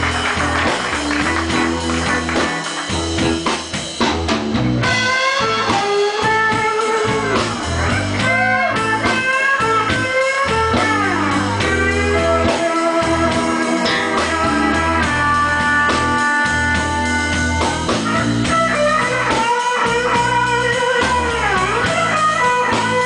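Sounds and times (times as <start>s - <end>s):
electric bass line: 0.0s - 23.0s
electric blues guitar lead: 0.0s - 23.0s.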